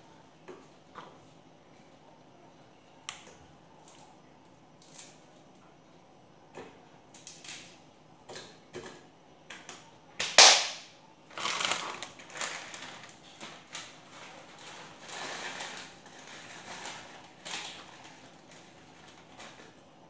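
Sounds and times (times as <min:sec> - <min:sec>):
plastic packets crinkling: 0:11.3 - 0:19.8.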